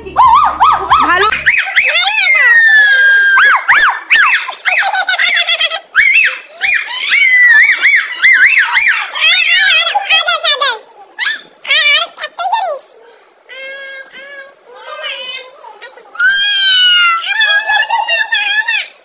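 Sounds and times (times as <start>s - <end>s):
girls squealing: 0.2s - 10.4s, 11.1s - 11.8s, 13.5s - 19.0s.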